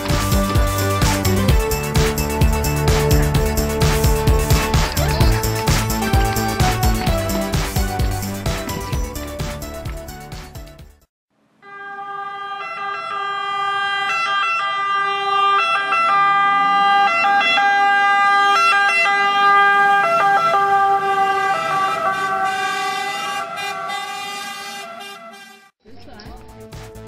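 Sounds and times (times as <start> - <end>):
fire engine siren: 11.6 - 25.7.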